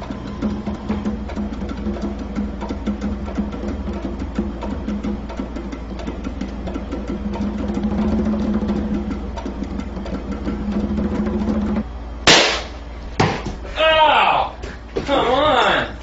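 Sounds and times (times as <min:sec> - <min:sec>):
music with light percussive beat: 0:00.0 - 0:13.4
balloon pop: 0:12.3 - 0:13.4.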